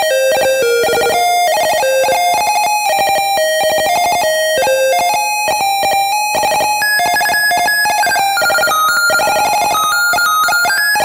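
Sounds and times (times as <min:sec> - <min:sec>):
chiptune square-wave beeps: 0:06.8 - 0:11.0.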